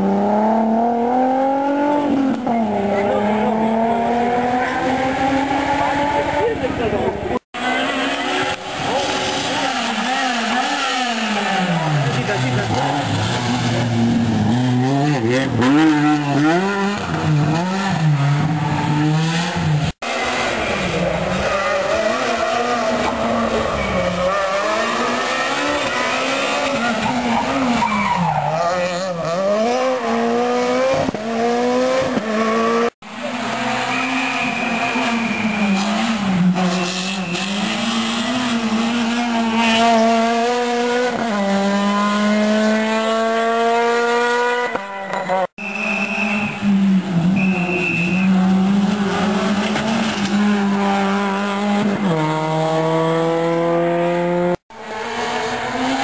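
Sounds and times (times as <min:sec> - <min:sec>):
rally car engines at full throttle: 0:00.0 - 0:56.0.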